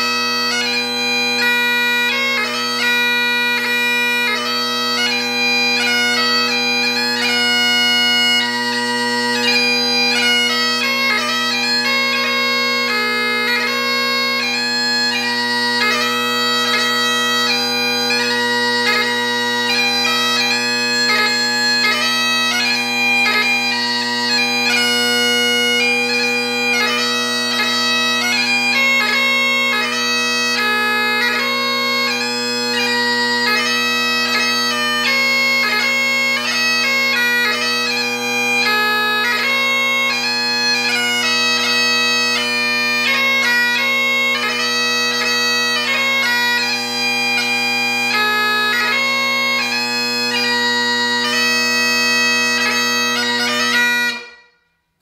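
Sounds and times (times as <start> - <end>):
bagpipe drones: 0.0 - 54.7
bagpipe chanter melody: 0.0 - 54.9.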